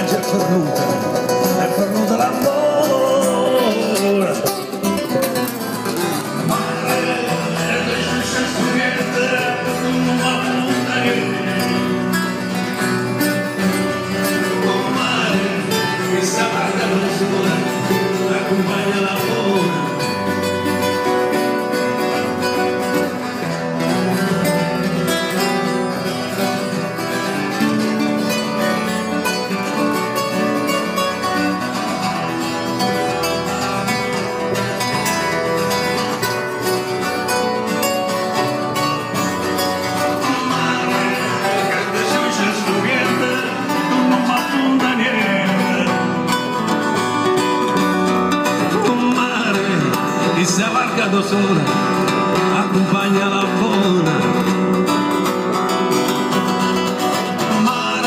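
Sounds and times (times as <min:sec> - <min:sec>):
man singing: 0:00.0 - 0:22.0, 0:38.8 - 0:55.6, 0:56.2 - 0:58.0
acoustic guitars: 0:00.0 - 0:58.0.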